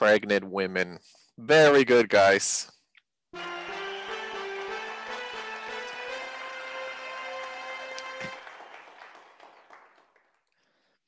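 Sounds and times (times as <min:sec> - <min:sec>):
held musical chord: 0:03.4 - 0:08.5
recorded applause: 0:03.4 - 0:11.0.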